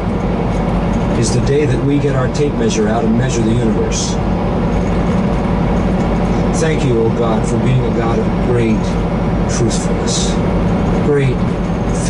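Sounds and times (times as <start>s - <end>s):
faint steady hum: 0.0s - 12.0s
truck engine and road drone: 0.0s - 12.0s.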